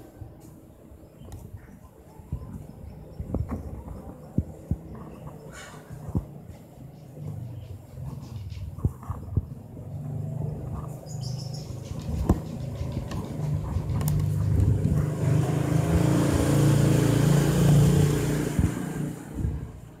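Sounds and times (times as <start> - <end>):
vehicle engine passing: 9.7 - 20.0.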